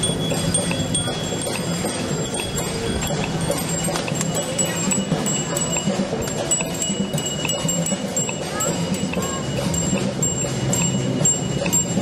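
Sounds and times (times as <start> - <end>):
bicycle bells ringing: 0.0 - 12.0
crowd background noise: 0.0 - 12.0.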